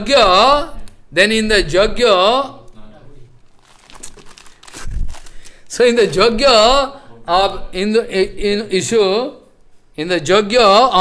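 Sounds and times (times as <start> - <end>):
paper rustling and crinkling: 3.4 - 5.7.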